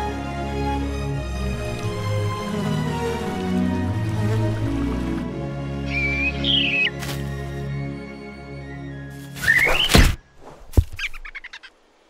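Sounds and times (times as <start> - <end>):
gentle orchestral music: 0.0 - 9.9
bird chirping: 5.8 - 10.4, 11.0 - 11.8.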